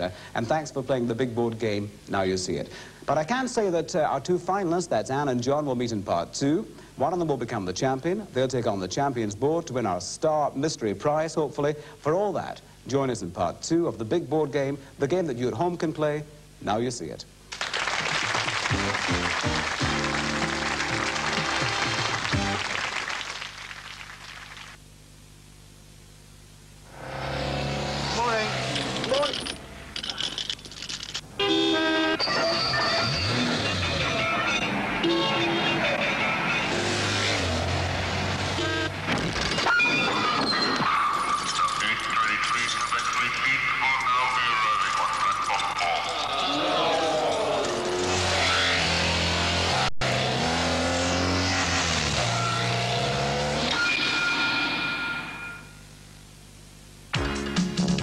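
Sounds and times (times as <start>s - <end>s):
low steady hum: 0.0s - 33.1s, 52.3s - 57.6s
music track: 18.3s - 22.9s
street traffic: 26.9s - 30.2s, 31.3s - 39.1s, 45.6s - 54.6s
loud car horn blast: 31.4s - 32.3s, 35.0s - 37.2s, 38.5s - 39.0s.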